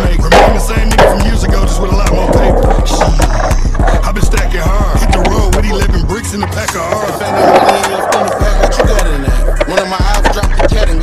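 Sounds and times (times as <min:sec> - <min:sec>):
hip hop beat: 0:00.0 - 0:11.0
skateboard clacks: 0:00.0 - 0:11.0
skateboard rolling on concrete: 0:00.0 - 0:11.0.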